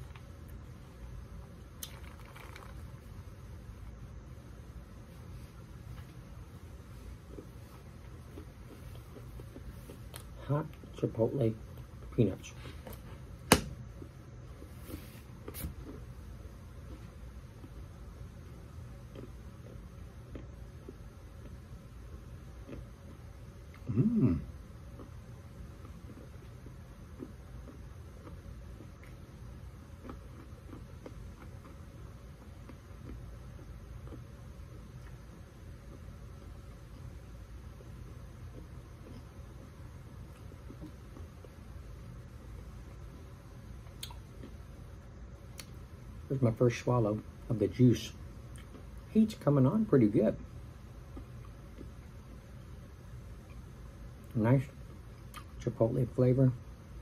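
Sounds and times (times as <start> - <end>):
peanuts being chewed: 0.0 - 3.2, 6.8 - 46.8, 48.0 - 49.4, 50.4 - 55.8
low room hum: 0.0 - 57.0.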